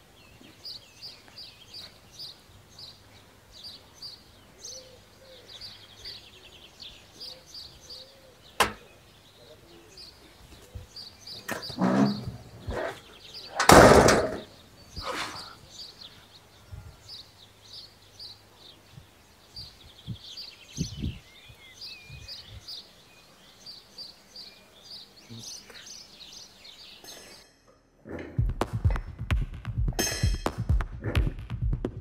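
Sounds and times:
small birds chirping: 0.0 - 29.2
street ambience: 0.0 - 31.9.

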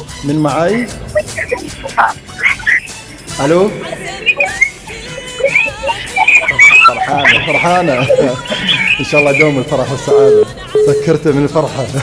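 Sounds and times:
excited voices over telephone line: 0.5 - 11.2
high wavering cry: 0.6 - 11.0.

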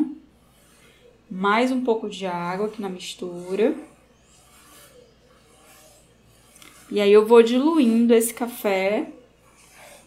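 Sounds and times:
wet paintbrush rubbing on paper: 0.0 - 10.0.

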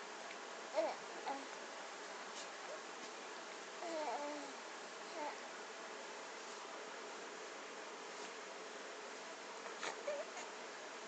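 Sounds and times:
steady background hiss: 0.0 - 11.0
baby cooing and grunting: 0.7 - 1.5, 3.8 - 5.4, 9.8 - 10.5.

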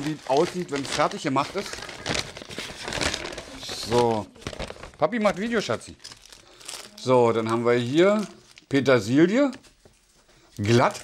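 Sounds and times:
paper bag rustling: 0.0 - 11.0.

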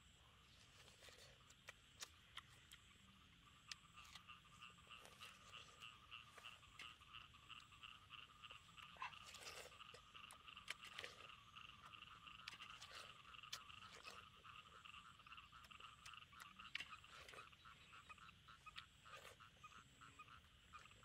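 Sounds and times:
chorus of calling animals: 0.1 - 21.0
watermelon being bitten and chewed: 0.4 - 21.0.

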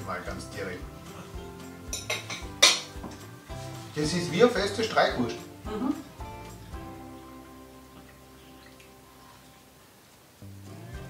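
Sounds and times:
background music held notes: 0.0 - 11.0
fork clinking on plate: 1.9 - 3.0.

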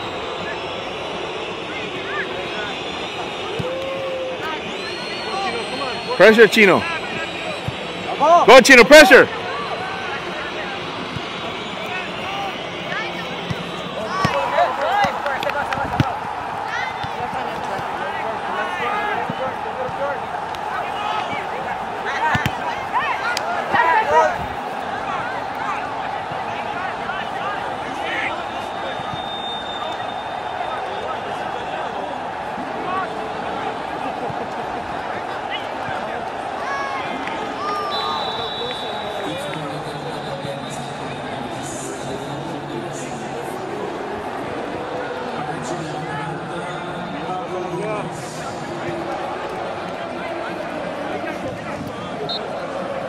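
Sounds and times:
high whistle tone: 4.5 - 8.2, 28.6 - 31.0, 37.8 - 39.3.

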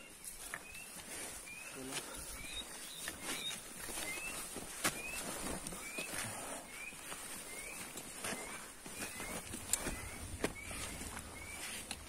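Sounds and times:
bird chirping: 0.0 - 12.0
footsteps on dirt trail: 0.0 - 12.0
trekking poles clicking: 7.1 - 12.0.

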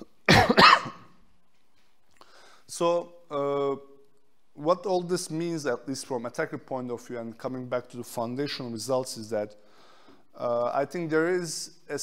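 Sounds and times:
man coughing: 0.3 - 1.1.

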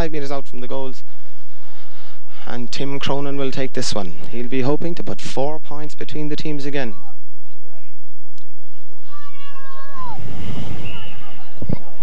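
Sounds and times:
low rumble: 7.2 - 12.0
distant person shouting: 9.0 - 12.0.

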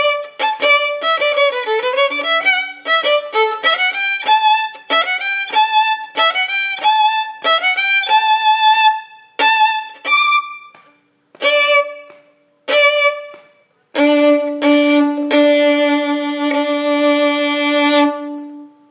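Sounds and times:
solo violin playing: 0.0 - 18.9.

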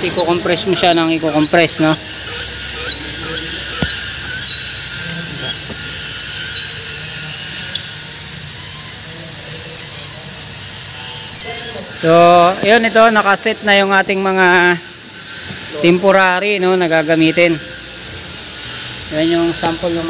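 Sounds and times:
steady high hiss: 0.0 - 20.0.

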